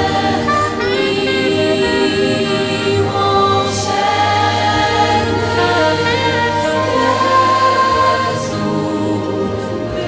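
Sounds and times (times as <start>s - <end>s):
choir singing long held notes: 0.0s - 10.0s.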